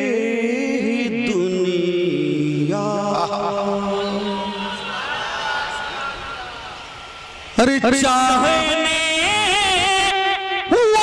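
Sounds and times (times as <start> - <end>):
man chanting into a microphone: 0.0 - 4.9, 7.6 - 11.0.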